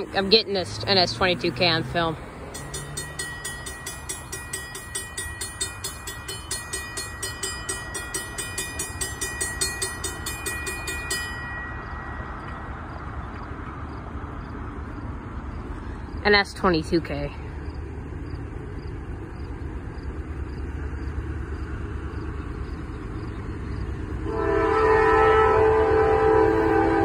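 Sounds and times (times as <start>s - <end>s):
crossing warning bell ringing: 0.0s - 18.0s, 19.6s - 27.0s
low rumble of freight train: 0.0s - 27.0s.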